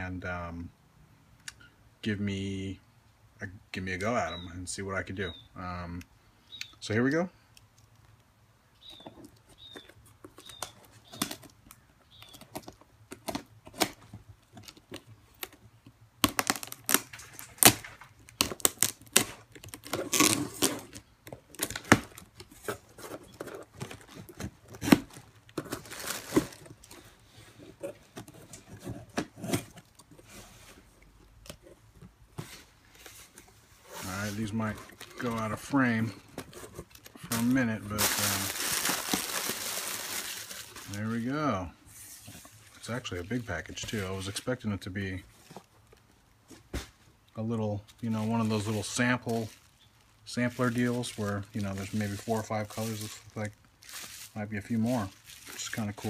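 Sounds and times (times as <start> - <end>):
packing tape tearing: 16.2 - 27.0, 36.9 - 41.0
bubble wrap crinkling: 16.2 - 30.3, 32.9 - 41.5, 47.9 - 56.0
person speaking: 33.9 - 36.5, 37.2 - 41.8, 47.4 - 49.6, 50.2 - 53.6, 54.3 - 56.0.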